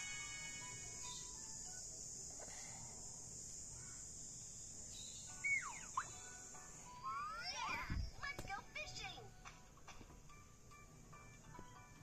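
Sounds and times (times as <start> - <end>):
high-pitched insect drone: 0.0 - 7.6
short whistled calls: 5.3 - 6.3.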